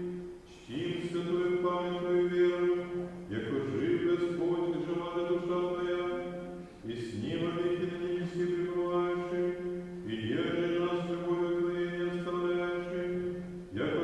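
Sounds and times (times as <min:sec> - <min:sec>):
slow chant of held notes: 0:00.0 - 0:14.0.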